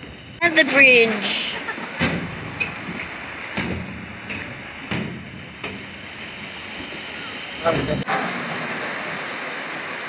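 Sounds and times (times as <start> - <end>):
footsteps on metal footbridge: 0.0 - 8.1
river water rushing: 0.6 - 10.0.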